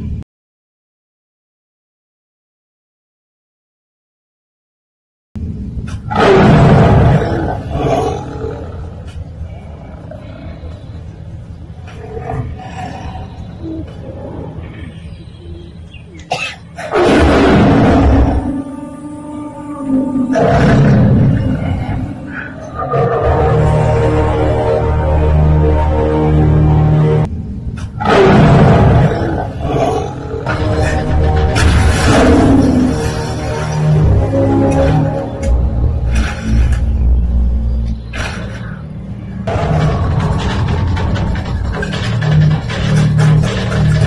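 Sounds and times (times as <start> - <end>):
tiger roaring: 5.9 - 10.8, 11.8 - 15.0, 16.8 - 26.2, 27.8 - 35.4
low rumble: 17.0 - 44.0.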